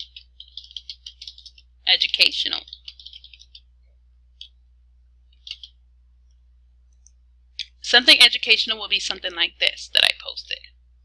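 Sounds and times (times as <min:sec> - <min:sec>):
computer mouse clicking: 0:00.0 - 0:01.7, 0:02.5 - 0:03.7, 0:04.4 - 0:04.6, 0:05.3 - 0:05.8
low steady hum: 0:00.0 - 0:11.0.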